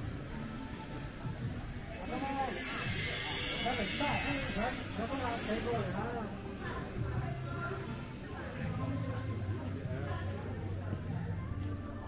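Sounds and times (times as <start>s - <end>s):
voices nearby: 0.0s - 12.0s.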